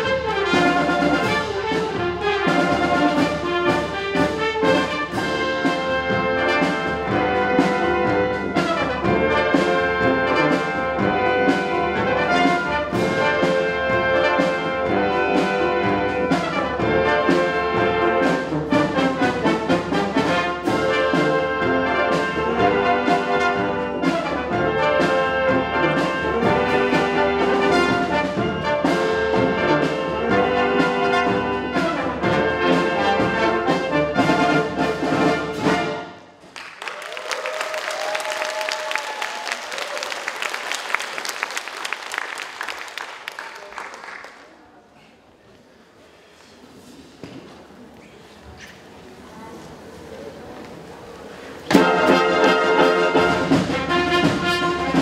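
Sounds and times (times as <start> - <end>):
brass band playing: 0.0 - 43.9, 51.6 - 55.0
audience applause: 36.4 - 45.0.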